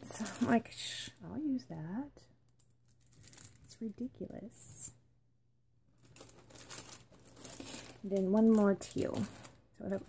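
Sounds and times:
plastic packaging crinkling: 0.0s - 1.1s, 2.6s - 4.0s, 5.9s - 10.0s.

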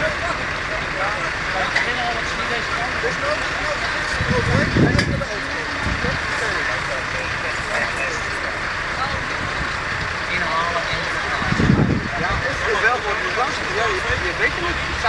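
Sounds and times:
fire engine running: 0.0s - 15.0s
people talking: 0.0s - 15.0s.

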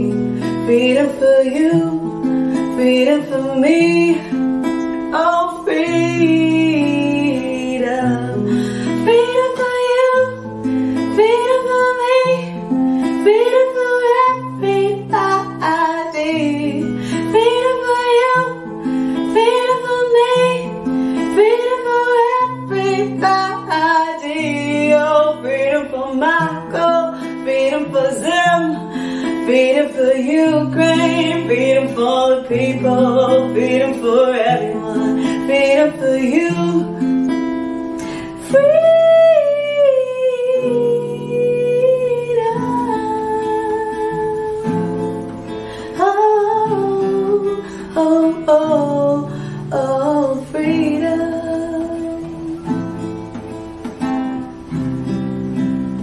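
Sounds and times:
woman singing: 0.0s - 54.8s
classical guitar: 0.0s - 56.0s.

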